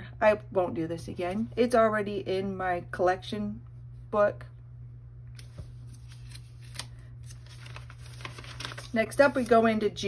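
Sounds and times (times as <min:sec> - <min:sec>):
paper pages turning: 0:05.4 - 0:09.8.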